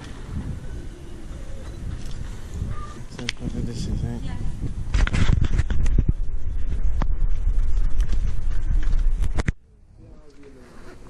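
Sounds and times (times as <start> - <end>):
microphone handling noise: 0.0 - 9.6.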